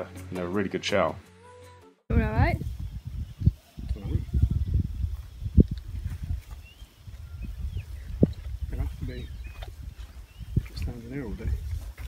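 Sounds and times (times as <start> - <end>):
wind buffeting microphone: 2.1 - 12.0
faint high bird chirps: 6.0 - 10.9.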